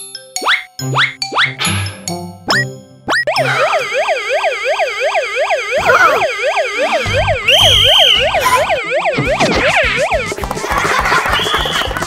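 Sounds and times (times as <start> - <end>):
electronic yelp siren wailing: 3.2 - 10.4.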